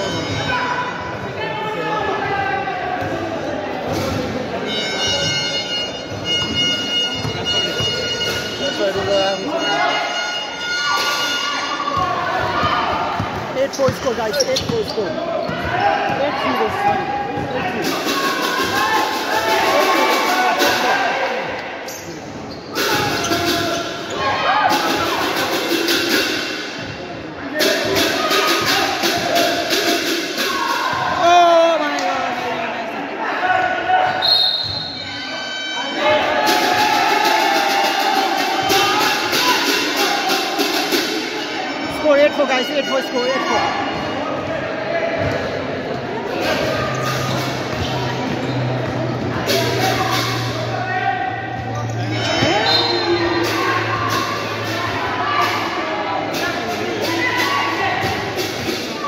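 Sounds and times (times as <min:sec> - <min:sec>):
people shouting in large hall: 0:00.0 - 0:59.0.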